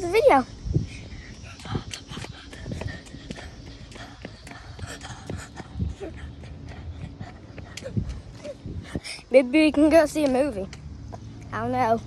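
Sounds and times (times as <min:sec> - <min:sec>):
child running on pavement: 0:00.8 - 0:11.4.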